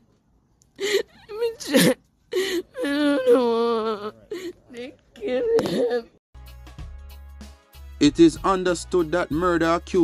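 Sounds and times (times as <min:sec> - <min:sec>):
woman sobbing and wailing: 0:00.8 - 0:06.2.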